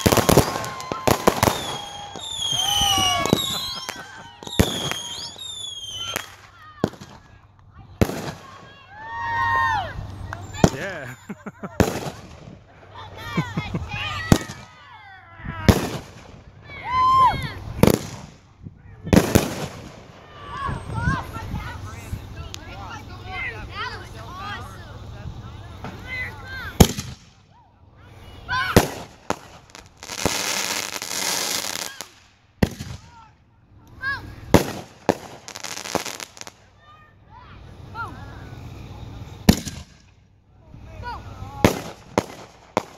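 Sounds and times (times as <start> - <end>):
firework shells bursting: 0.0 - 8.9, 10.0 - 13.0, 14.0 - 14.8, 15.7 - 16.6, 17.7 - 18.5, 19.1 - 20.3, 25.8 - 27.5, 28.7 - 33.2, 34.4 - 36.8, 38.6 - 40.2, 41.6 - 42.9.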